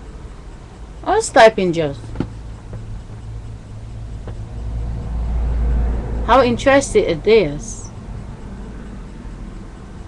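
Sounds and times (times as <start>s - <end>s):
low rumble: 1.7s - 10.0s.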